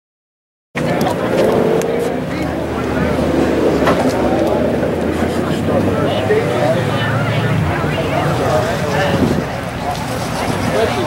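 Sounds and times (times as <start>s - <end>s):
people talking: 0.8s - 11.0s.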